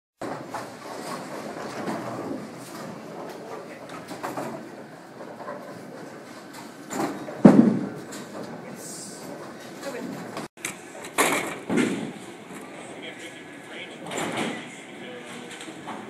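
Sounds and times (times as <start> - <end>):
bowling pins clattering: 0.2 - 12.8
bowling balls rolling: 0.2 - 13.0.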